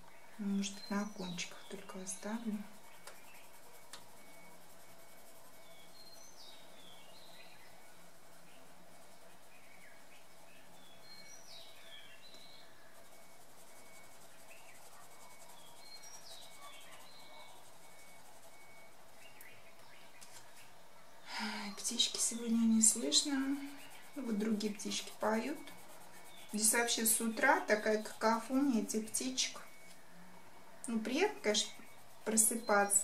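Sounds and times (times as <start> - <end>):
low steady room hum: 0.0 - 33.0
songbirds chirping faintly: 0.0 - 33.0.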